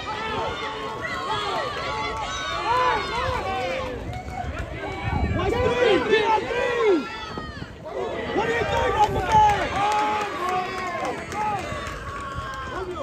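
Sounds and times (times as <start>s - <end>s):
people shouting and calling: 0.0s - 13.0s.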